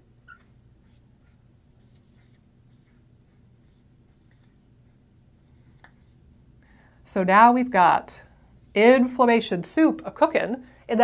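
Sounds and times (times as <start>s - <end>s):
low room hum: 0.0s - 11.0s
marker squeaking on whiteboard: 0.2s - 3.0s.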